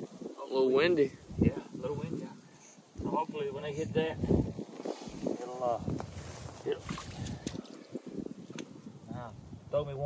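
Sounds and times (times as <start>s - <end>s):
wind buffeting microphone: 0.0s - 10.0s
creek water splashing: 4.5s - 9.0s.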